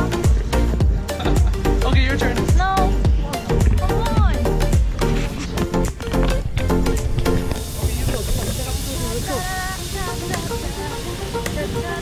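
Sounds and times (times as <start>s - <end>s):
steady hiss: 4.5s - 12.0s.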